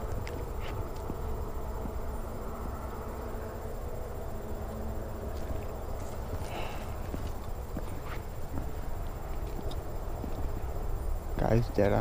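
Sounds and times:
low rumble of outdoor background: 0:00.0 - 0:12.0.

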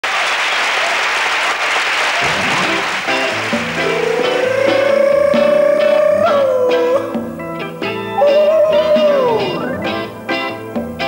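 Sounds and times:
audience applause: 0:00.0 - 0:06.7
bass guitar: 0:02.2 - 0:11.0
picked guitar notes: 0:02.2 - 0:11.0.

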